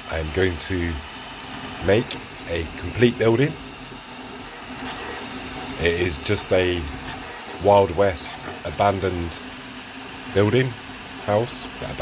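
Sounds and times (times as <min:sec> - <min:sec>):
printer fans and motors whirring: 0:00.0 - 0:12.0.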